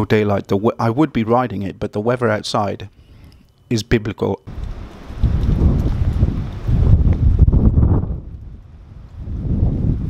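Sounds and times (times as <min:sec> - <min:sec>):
gusty wind buffeting microphone: 0:04.5 - 0:10.0.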